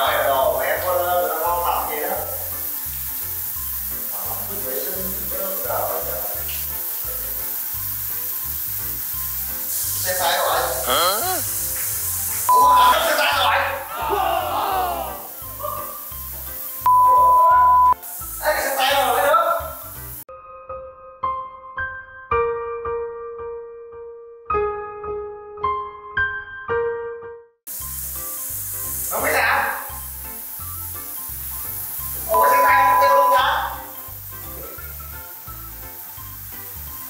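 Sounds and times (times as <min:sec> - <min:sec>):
shower water hissing: 0:00.0 - 0:20.3, 0:27.7 - 0:37.0
man's voice: 0:10.1 - 0:11.5, 0:12.6 - 0:15.3, 0:32.3 - 0:33.8
loud beep tones: 0:12.5 - 0:13.1, 0:16.9 - 0:18.0, 0:32.3 - 0:33.8.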